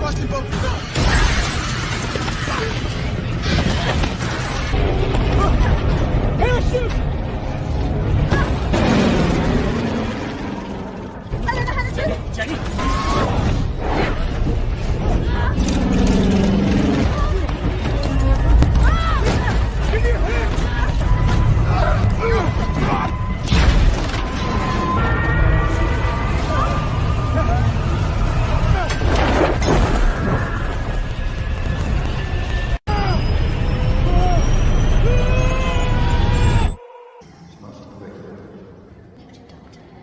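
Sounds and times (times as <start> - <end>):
people shouting: 18.1 - 23.4.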